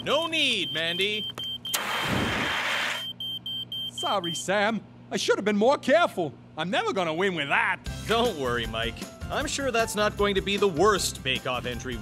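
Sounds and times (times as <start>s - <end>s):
smoke alarm beeping rapidly: 0.0s - 4.5s
fire extinguisher spraying: 1.7s - 3.0s.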